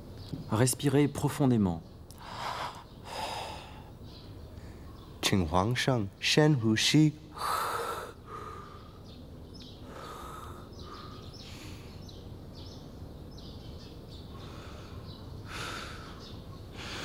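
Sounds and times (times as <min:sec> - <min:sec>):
man breathing deeply: 0:02.2 - 0:04.9, 0:07.3 - 0:09.1, 0:09.8 - 0:12.0, 0:14.3 - 0:17.0.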